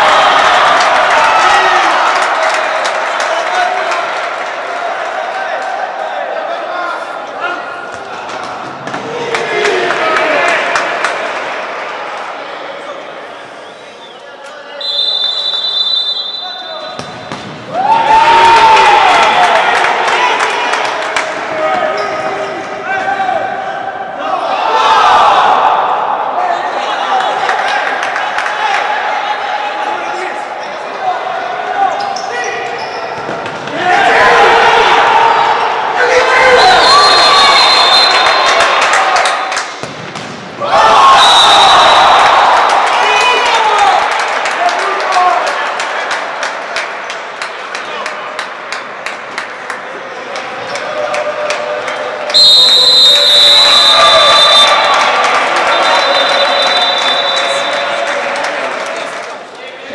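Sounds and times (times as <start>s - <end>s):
whistle blowing: 13.6s - 17.0s, 36.6s - 38.7s, 41.2s - 42.1s, 52.3s - 57.8s.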